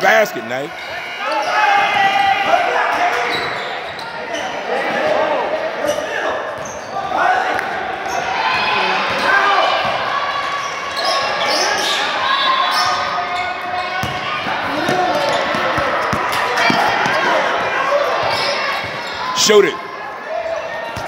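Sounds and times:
people shouting in a gym: 0.6 - 21.0
basketball bouncing on court: 13.9 - 19.2.

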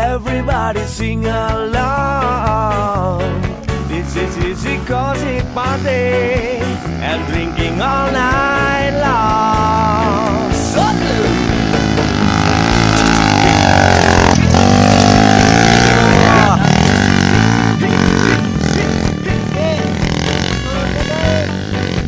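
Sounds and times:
background music: 0.0 - 22.0
dirt bike engines revving: 1.6 - 22.0.

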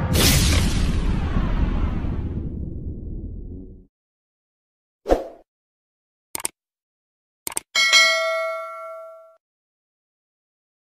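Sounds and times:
mouse clicks: 6.4 - 6.6, 7.5 - 7.7
bright bell ding: 7.8 - 9.4.

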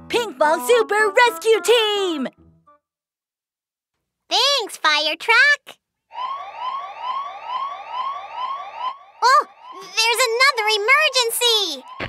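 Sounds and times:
electronic alarm siren whooping: 6.1 - 9.9.

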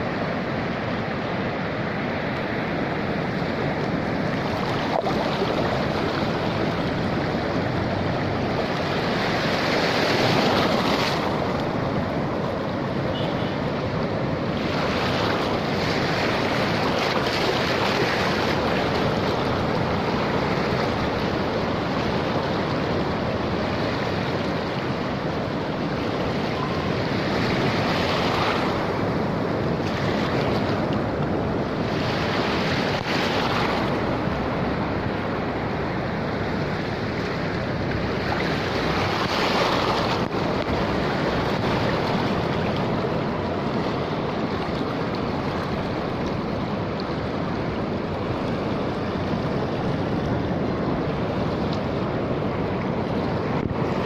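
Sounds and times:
ocean surf on rocky shore: 0.0 - 54.0.

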